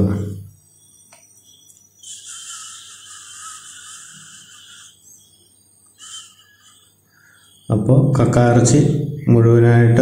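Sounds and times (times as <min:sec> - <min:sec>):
insect buzzing high-pitched: 0:00.0 - 0:08.0.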